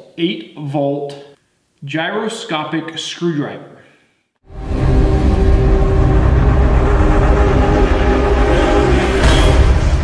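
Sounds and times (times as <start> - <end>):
low drone: 4.5 - 10.0.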